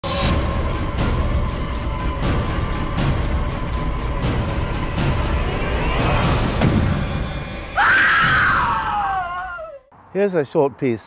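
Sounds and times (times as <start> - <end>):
low rumble: 0.2 - 7.8
scream-like wail sound effect: 7.6 - 9.8.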